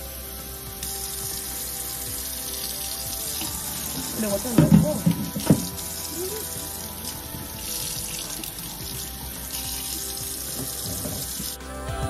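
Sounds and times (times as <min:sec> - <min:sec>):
background music: 0:00.0 - 0:12.0
tap water running into sink: 0:02.6 - 0:06.6, 0:07.2 - 0:11.6.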